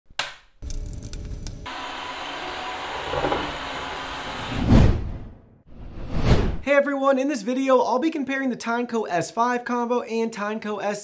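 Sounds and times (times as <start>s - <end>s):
floor cleaner whirring: 1.7s - 4.6s.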